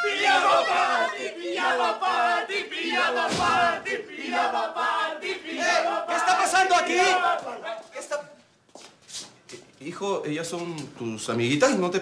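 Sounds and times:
faint shuffling and rustling: 7.7s - 11.0s.

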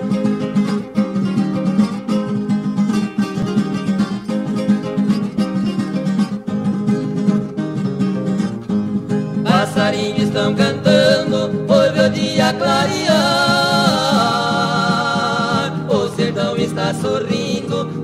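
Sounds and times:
guitars picking a lively melody: 0.0s - 18.0s
people singing: 9.4s - 18.0s.

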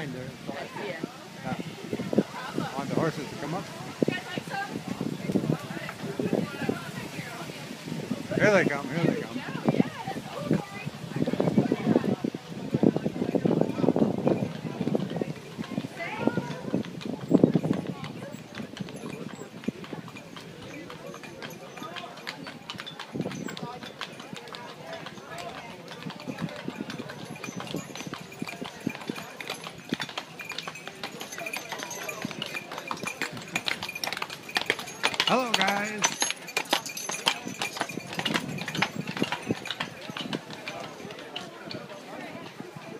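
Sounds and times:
horse hooves clip-clopping on pavement: 0.0s - 42.9s
people talking: 0.0s - 42.9s
people's voices: 0.0s - 42.9s.

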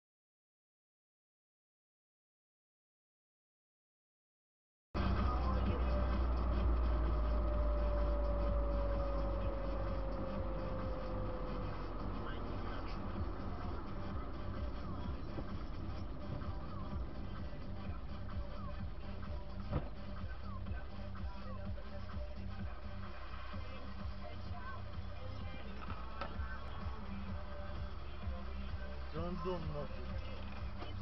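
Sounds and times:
car radio music and voices: 5.0s - 31.0s
road and engine rumble: 5.0s - 31.0s.

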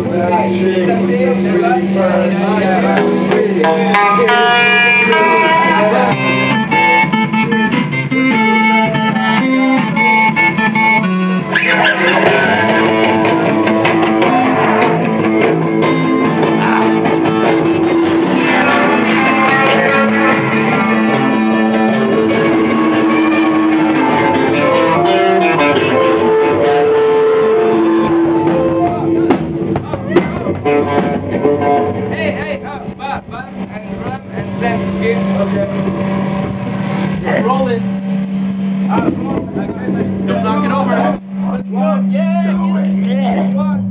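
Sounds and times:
distorted electric guitar riff: 0.0s - 43.9s
punk band playing live: 0.0s - 43.9s
drum hits: 26.3s - 41.5s.

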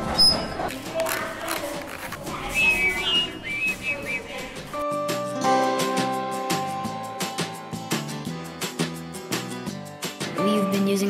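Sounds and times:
children's voices: 0.7s - 4.8s
high whistle notes: 2.6s - 4.3s
background music with held chords: 4.7s - 11.0s.

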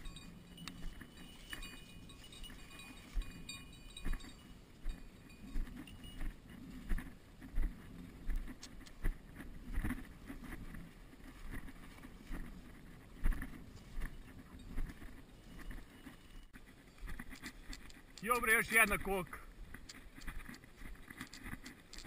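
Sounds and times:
footsteps in dry grass: 0.0s - 22.0s
twigs scraping clothing: 0.0s - 22.0s.

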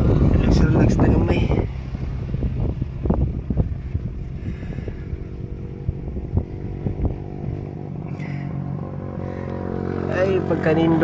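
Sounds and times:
motorcycle engine droning: 0.0s - 11.0s
vehicle frame rattling: 0.0s - 11.0s.

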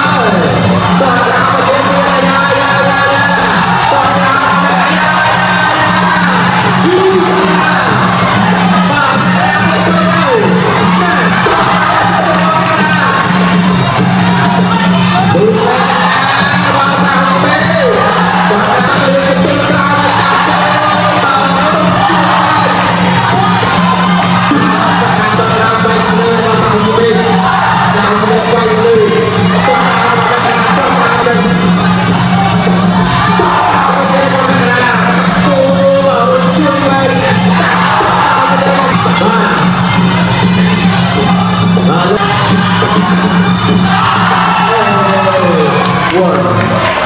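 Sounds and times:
crowd shouting and cheering: 0.0s - 47.0s
drums: 0.0s - 47.0s.

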